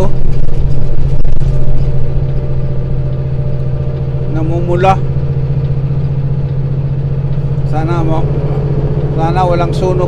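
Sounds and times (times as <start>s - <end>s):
diesel engine droning: 0.0s - 10.0s
road noise: 0.0s - 10.0s.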